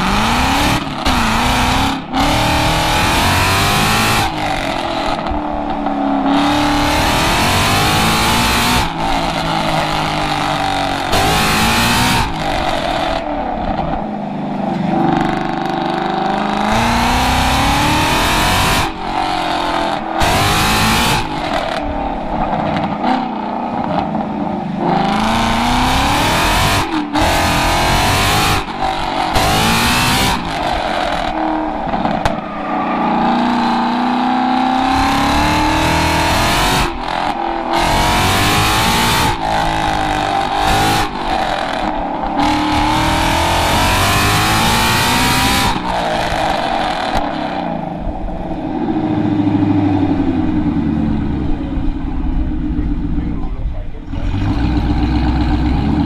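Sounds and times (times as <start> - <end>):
car engine revving: 0.0 - 56.0.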